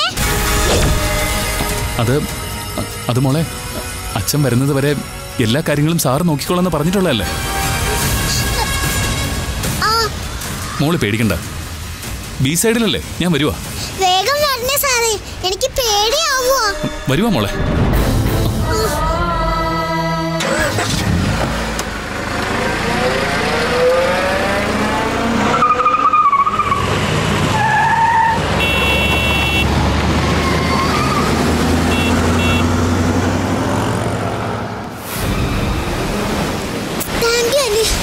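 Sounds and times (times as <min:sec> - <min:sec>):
car engine and road noise: 0:00.0 - 0:18.7, 0:20.3 - 0:38.0.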